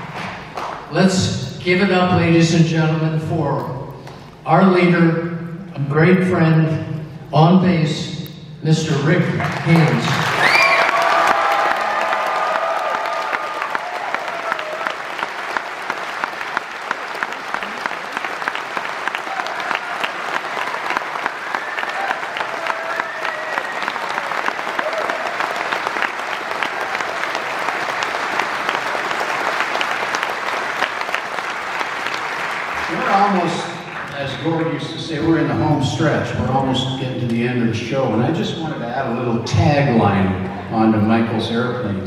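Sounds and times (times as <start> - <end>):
audience applauding: 0.0 - 0.9, 9.4 - 35.4.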